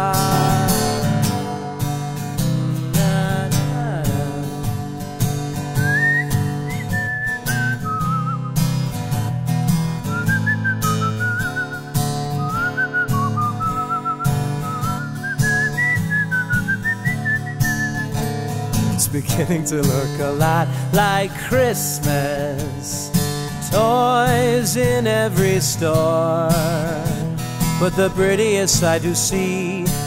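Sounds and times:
guitar accompaniment: 0.0 - 30.0
whistled melody with vibrato: 5.7 - 8.7, 10.0 - 18.3.

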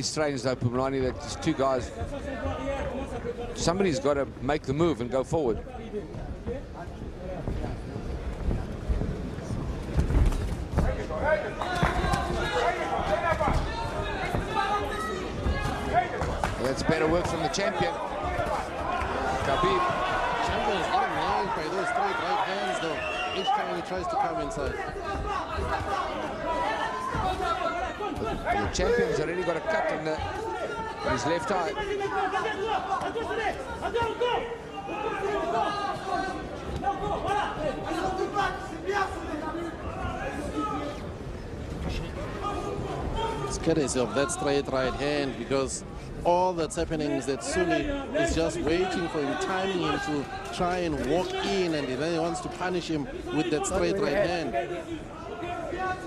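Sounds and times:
chatter of voices in a hall: 0.0 - 56.0
crowd noise: 0.0 - 56.0.

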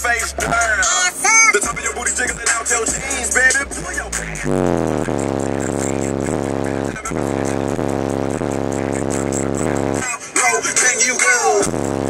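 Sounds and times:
subwoofers playing bass note: 0.2 - 10.0, 11.6 - 12.0.

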